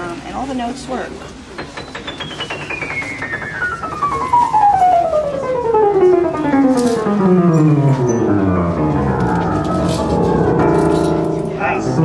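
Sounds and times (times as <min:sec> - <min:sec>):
descending piano run: 0:01.4 - 0:12.0.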